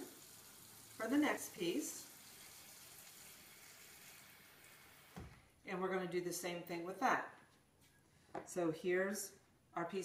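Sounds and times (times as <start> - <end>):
faucet running into plastic container: 0.0 - 5.2.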